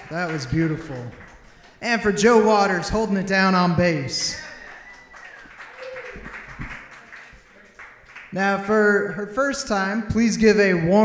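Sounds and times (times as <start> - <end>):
audience applause: 0.0 - 2.8, 4.4 - 8.4.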